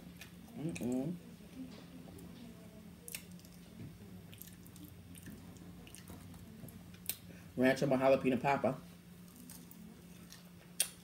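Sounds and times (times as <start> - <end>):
person chewing food: 4.3 - 7.3, 9.2 - 11.0.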